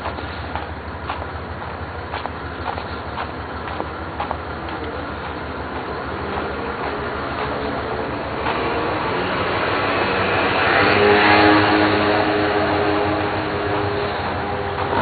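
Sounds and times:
vehicle passing close by: 5.5 - 15.0.

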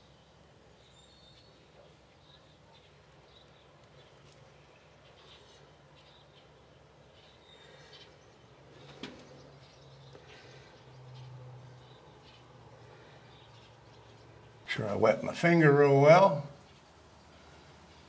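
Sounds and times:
small bird chirps: 0.0 - 14.6.

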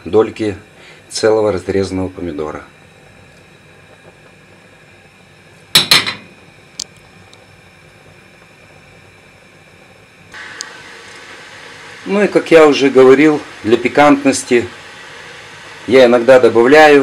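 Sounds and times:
faint steady hiss: 0.0 - 17.0
dishes clattering: 5.8 - 6.3.

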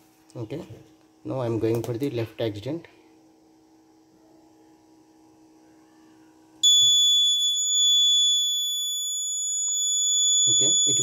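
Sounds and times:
faint low hum: 0.0 - 11.0
high-pitched alarm buzzer: 6.6 - 11.0.

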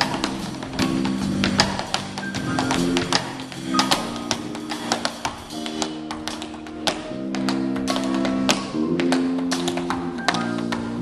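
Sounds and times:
tap shoes on wooden stage: 0.0 - 11.0.

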